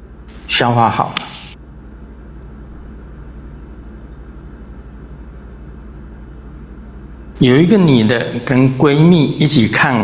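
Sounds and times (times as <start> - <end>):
low hum: 0.0 - 9.5.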